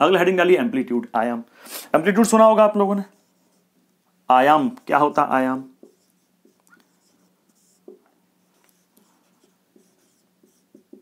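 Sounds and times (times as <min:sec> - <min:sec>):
marker pen squeaking on whiteboard: 0:05.8 - 0:11.0.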